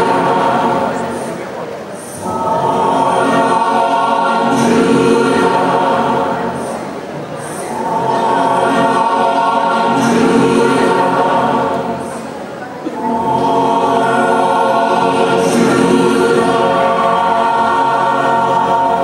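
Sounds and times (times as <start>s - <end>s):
choir singing held chords: 0.0s - 19.0s.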